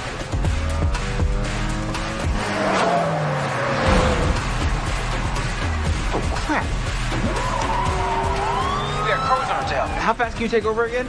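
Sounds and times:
car rumble: 0:00.0 - 0:10.3
background music: 0:00.0 - 0:11.0.

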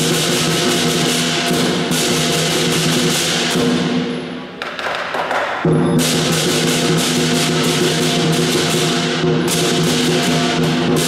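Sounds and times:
cymbals clashing: 0:00.0 - 0:04.6, 0:05.3 - 0:11.0
lion drum beating: 0:04.6 - 0:11.0.

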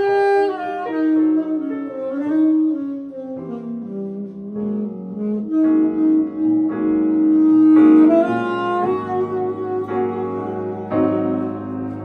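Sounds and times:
grand piano chords: 0:00.0 - 0:12.0
saxophone: 0:00.0 - 0:12.0.

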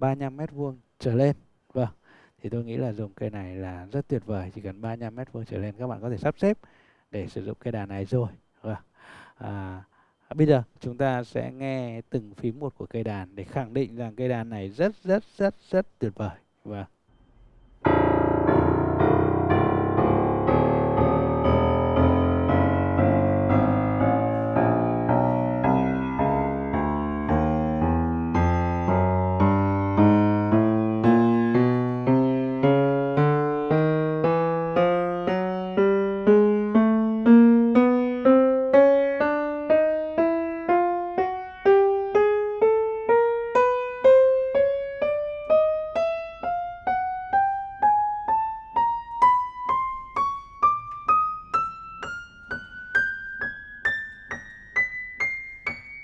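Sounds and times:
piano single notes ringing: 0:17.1 - 0:56.0.

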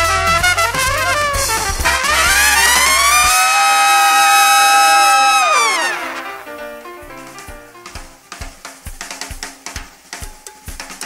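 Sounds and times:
trumpet high held note: 0:00.0 - 0:07.4
big band playing: 0:00.0 - 0:11.0.

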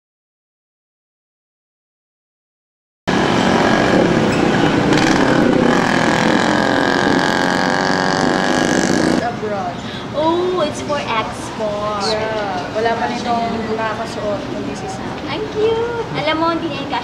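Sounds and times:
babble of many voices: 0:03.1 - 0:17.0.

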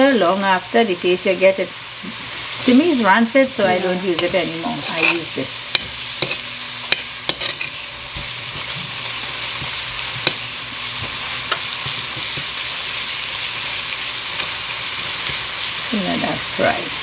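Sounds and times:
garlic sizzling in oil: 0:00.0 - 0:17.0.

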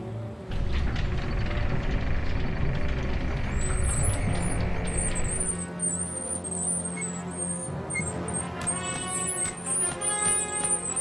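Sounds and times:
metal sliding door rumbling: 0:00.5 - 0:09.8
background music: 0:03.5 - 0:11.0.

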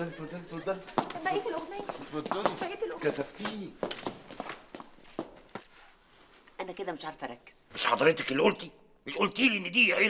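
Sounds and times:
footsteps on hard floor: 0:00.8 - 0:06.4.

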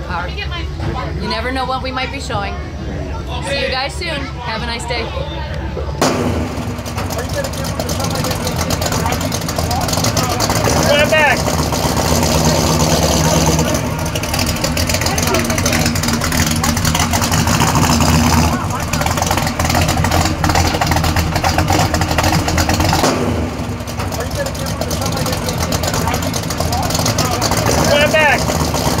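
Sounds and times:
people talking: 0:00.0 - 0:06.0, 0:07.0 - 0:11.5, 0:12.2 - 0:22.0, 0:24.0 - 0:28.6
car engine running: 0:00.0 - 0:29.0.

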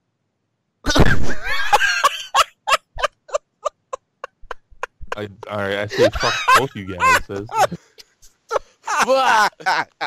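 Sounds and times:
person laughing in short bursts: 0:04.4 - 0:07.8.

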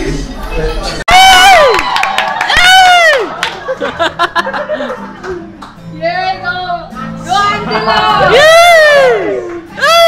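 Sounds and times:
crowd chatter: 0:00.0 - 0:01.0, 0:03.6 - 0:10.0
high-pitched cheering whoop: 0:01.1 - 0:03.5, 0:07.7 - 0:10.0.

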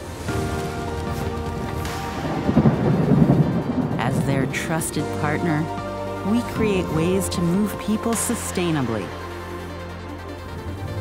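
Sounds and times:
background music: 0:00.0 - 0:11.0
low rumble of thunder: 0:00.2 - 0:06.2.

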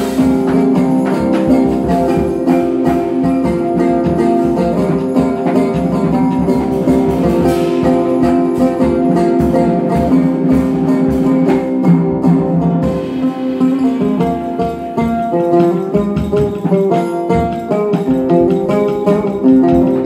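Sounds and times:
drum kit with cymbals: 0:00.0 - 0:20.0
oud playing plucked melody: 0:00.0 - 0:20.0.

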